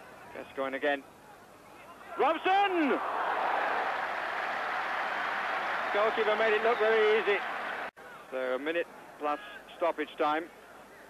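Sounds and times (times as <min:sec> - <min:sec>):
stadium crowd noise: 0:01.0 - 0:11.0.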